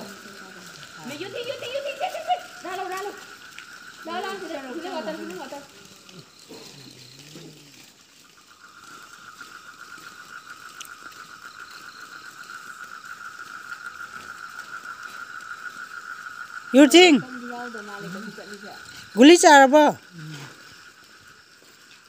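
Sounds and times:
loud voice: 0:16.8 - 0:17.2, 0:19.2 - 0:20.0.

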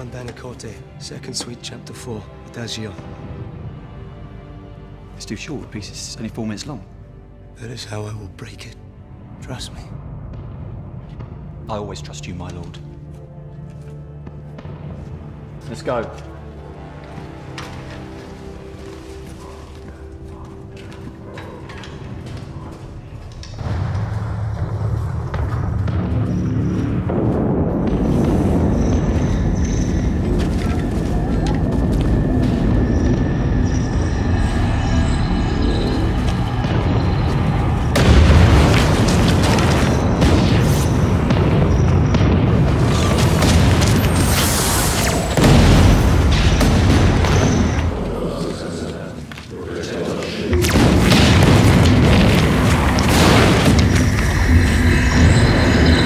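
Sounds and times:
film score music: 0:00.0 - 0:56.0
rumble of explosions: 0:23.2 - 0:56.0
heavy booms: 0:36.0 - 0:48.3, 0:50.5 - 0:56.0.

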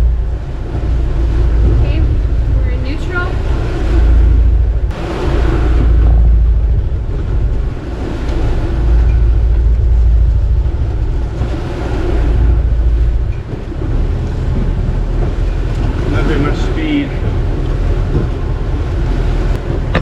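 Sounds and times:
rushing sea water: 0:00.0 - 0:20.0
wind buffeting microphone: 0:00.0 - 0:20.0.

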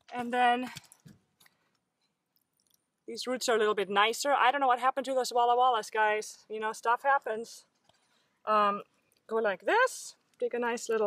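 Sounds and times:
faint rustles of soil and seedlings: 0:00.0 - 0:11.0.

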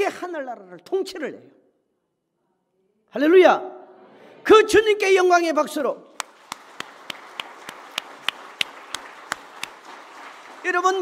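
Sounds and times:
congregation applauding: 0:06.2 - 0:11.0
sharp even claps: 0:06.2 - 0:11.0.

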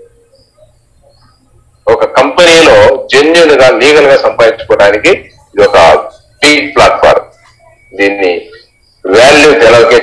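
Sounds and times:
man talking: 0:01.9 - 0:07.3, 0:07.9 - 0:10.0.

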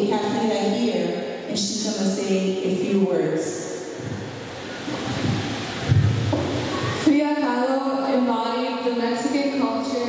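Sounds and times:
microphone thump: 0:04.0 - 0:04.3, 0:04.9 - 0:07.0
microphone handling rustle: 0:04.0 - 0:07.0.

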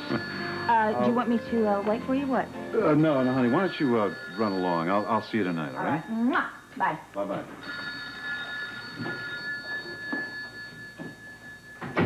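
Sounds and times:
telephone ringing: 0:00.0 - 0:06.1, 0:07.6 - 0:12.0.

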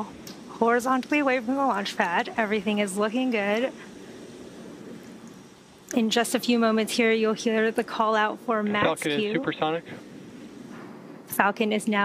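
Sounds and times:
distant rocket engine roar: 0:00.0 - 0:12.0.

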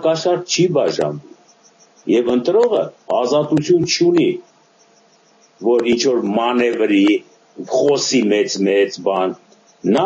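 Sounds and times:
man speaking over video call: 0:00.0 - 0:01.4, 0:02.0 - 0:04.5, 0:05.6 - 0:10.0
faint steady hum: 0:00.0 - 0:10.0.

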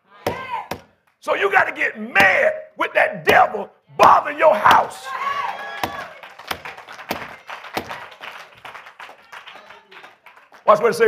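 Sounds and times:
sharp thuds echoing in large room: 0:00.2 - 0:01.0, 0:03.2 - 0:05.0.

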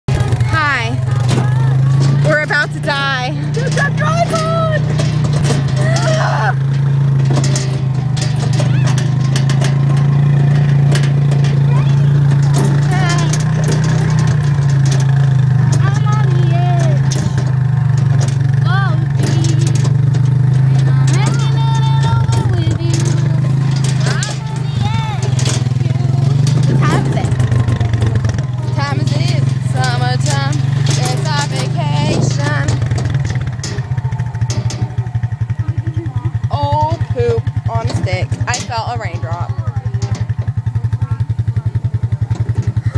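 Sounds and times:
atv engine droning: 0:00.0 - 0:42.9.

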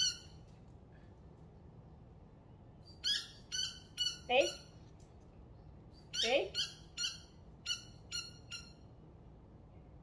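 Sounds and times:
squeaky dog toy squeaks: 0:00.0 - 0:00.4, 0:02.9 - 0:04.7, 0:06.0 - 0:08.9
faint room hum: 0:00.0 - 0:10.0.

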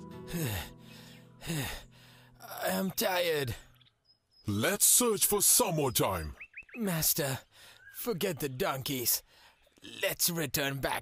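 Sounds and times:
man sighing: 0:00.0 - 0:02.7
soft background music: 0:00.0 - 0:03.3
man speaking: 0:02.4 - 0:03.6, 0:04.5 - 0:07.4, 0:08.0 - 0:09.2, 0:09.8 - 0:11.0.

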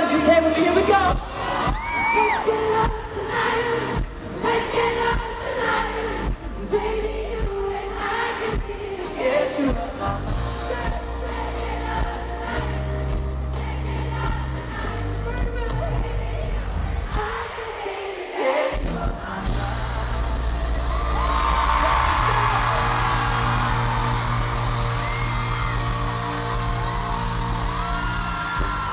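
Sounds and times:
crowd screaming and cheering: 0:00.0 - 0:15.1, 0:15.7 - 0:28.9
live pop band playing: 0:00.0 - 0:28.9
sustained bass notes: 0:19.5 - 0:28.9.

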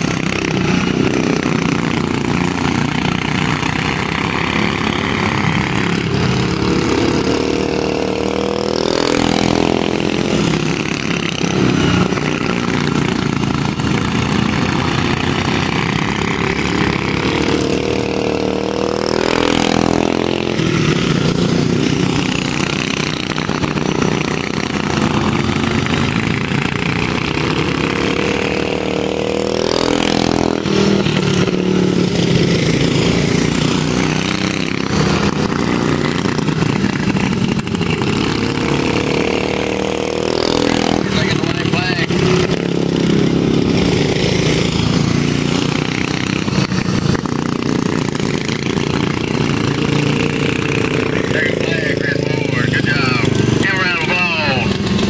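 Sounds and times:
go-kart engines racing: 0:00.0 - 0:55.0.

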